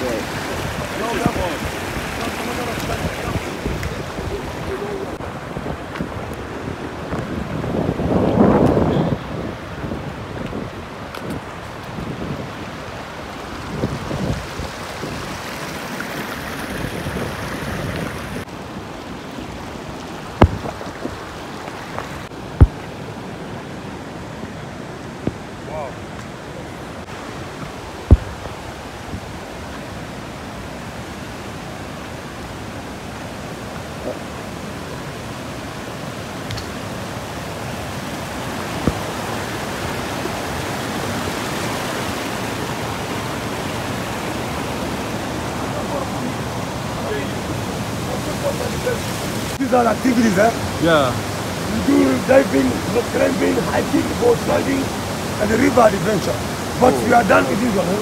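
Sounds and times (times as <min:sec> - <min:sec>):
white-water rapids rushing: 0:00.0 - 0:58.0.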